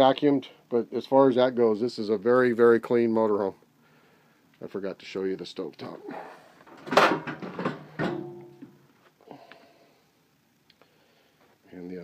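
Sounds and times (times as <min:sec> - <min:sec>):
stove cover clattering: 0:06.8 - 0:08.7.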